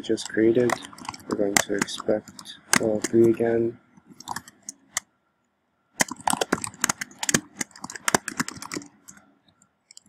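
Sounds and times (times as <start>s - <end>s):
typing on computer keyboard: 0.1s - 3.4s, 4.1s - 5.0s, 6.0s - 10.0s.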